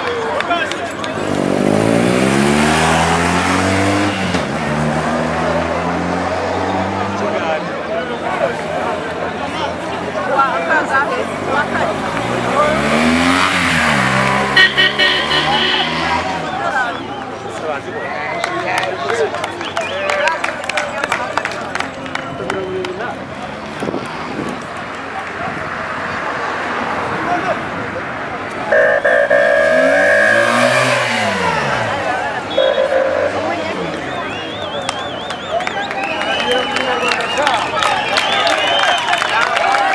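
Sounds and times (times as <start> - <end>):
crowd chatter: 0.0 - 39.9
motorcycle engine passing by: 1.1 - 7.2, 11.6 - 16.7, 29.0 - 34.0
car driving past: 1.1 - 7.6, 28.6 - 34.5
car horn blasts: 14.2 - 16.4, 28.7 - 31.8, 32.4 - 33.8
high tone in short pulses: 28.7 - 31.1.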